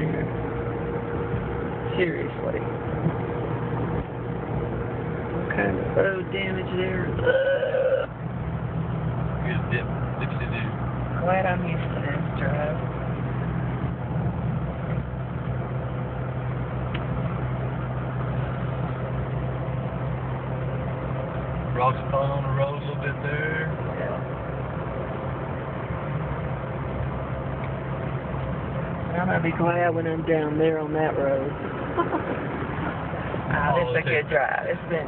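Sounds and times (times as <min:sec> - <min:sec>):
road noise: 0:00.0 - 0:35.0
vehicle engine drone: 0:00.0 - 0:35.0.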